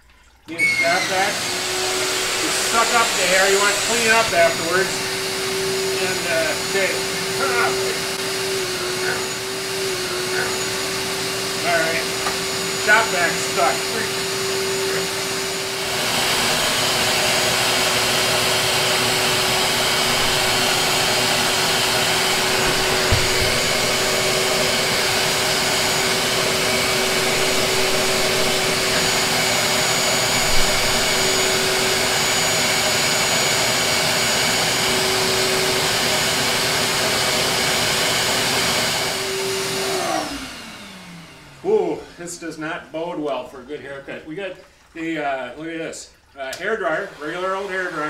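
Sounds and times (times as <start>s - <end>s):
vacuum cleaner running: 0.5s - 43.1s, 46.5s - 48.0s
motor winding down whine: 0.8s - 36.0s.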